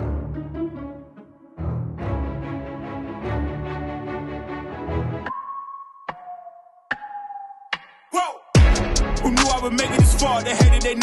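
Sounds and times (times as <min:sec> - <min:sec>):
dense music track: 0:00.0 - 0:05.4, 0:08.5 - 0:11.0.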